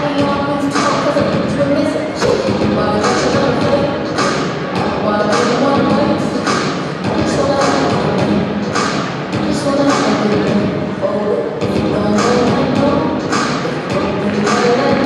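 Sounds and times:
background music: 0.0s - 15.0s
murmur of voices in a hall: 0.0s - 15.0s.

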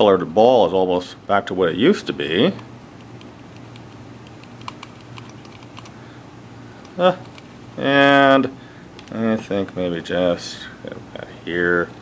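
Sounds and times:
low steady hum: 0.0s - 12.0s
small irregular clicks: 2.6s - 6.0s, 6.8s - 7.5s.

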